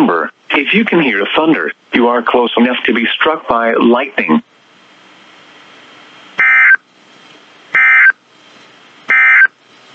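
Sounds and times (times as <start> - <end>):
faint static hiss: 0.0 - 9.9.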